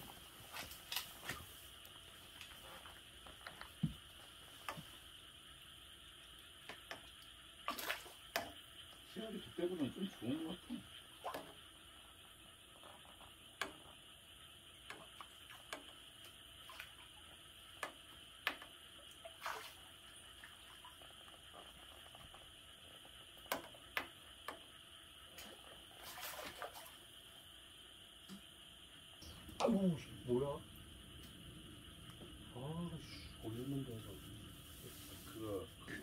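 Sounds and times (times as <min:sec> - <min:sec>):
insect chirring: 0:01.6 - 0:26.0.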